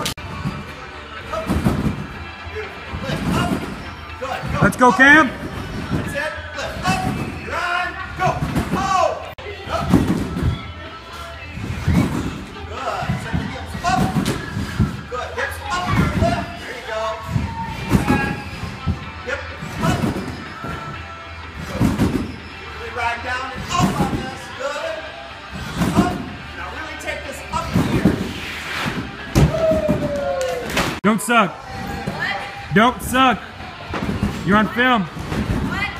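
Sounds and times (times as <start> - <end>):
trampoline bed thudding: 0.0 - 22.6, 23.3 - 24.5, 25.5 - 26.5, 27.5 - 31.0, 33.8 - 35.9
music: 0.0 - 35.9.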